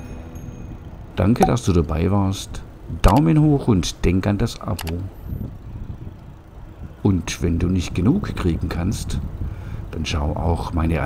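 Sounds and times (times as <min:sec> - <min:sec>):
wheels rolling on pavement: 0:00.0 - 0:11.0
wind buffeting microphone: 0:05.1 - 0:11.0.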